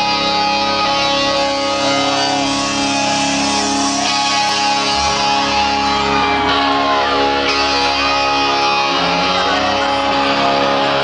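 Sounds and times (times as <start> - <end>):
electric guitars holding a chord: 0.0 - 11.0.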